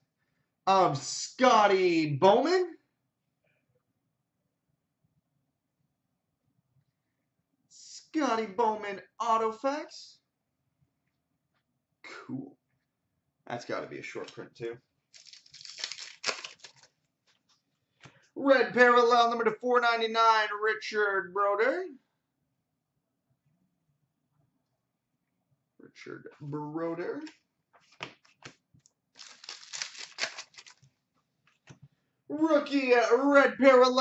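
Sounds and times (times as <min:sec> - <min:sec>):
trading cards flipped through: 0:15.2 - 0:16.9, 0:29.2 - 0:30.8.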